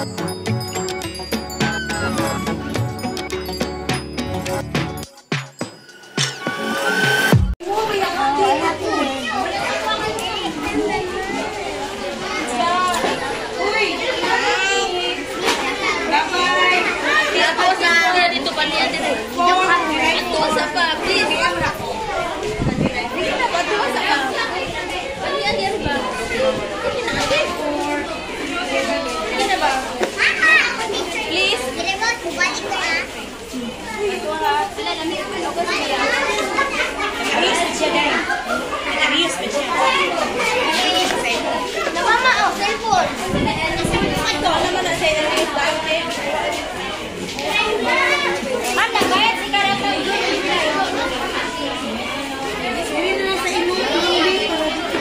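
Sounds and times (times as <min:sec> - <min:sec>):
crowd of children and adults chattering: 0:00.0 - 0:55.0
high-pitched children's voices: 0:07.6 - 0:55.0.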